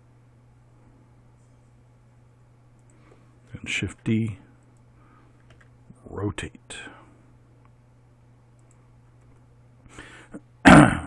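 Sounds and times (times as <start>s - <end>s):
faint breath: 4.9s - 5.5s, 9.9s - 10.4s
man coughing: 10.6s - 11.0s.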